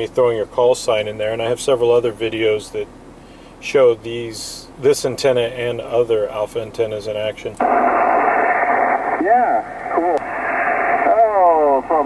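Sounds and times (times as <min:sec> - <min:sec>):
radio band hiss: 0:07.6 - 0:12.0
radio voice over speaker: 0:09.0 - 0:12.0.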